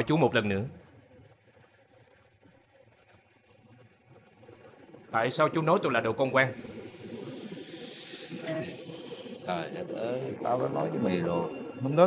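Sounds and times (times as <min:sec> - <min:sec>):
faint low murmur: 0:09.4 - 0:12.0.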